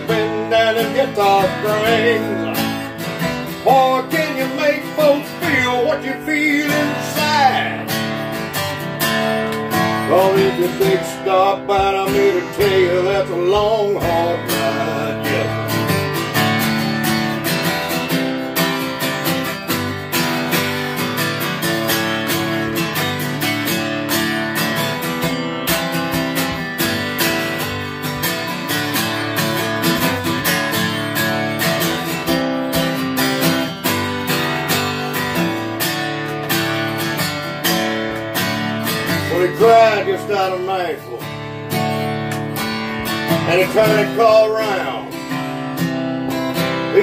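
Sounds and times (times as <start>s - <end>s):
acoustic guitar strummed: 0.0s - 47.0s.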